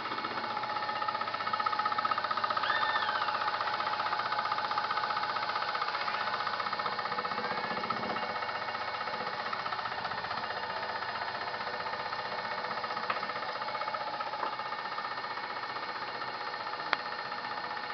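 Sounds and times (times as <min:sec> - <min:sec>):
scroll saw blade chatter: 0:00.0 - 0:16.9.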